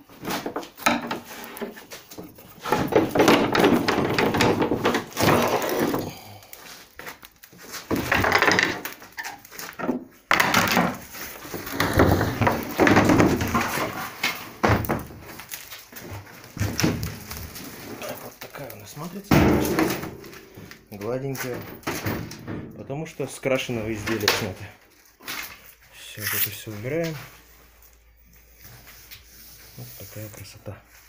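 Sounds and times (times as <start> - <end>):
fibreglass cracking and knocking: 0.2 - 6.3, 6.9 - 22.8.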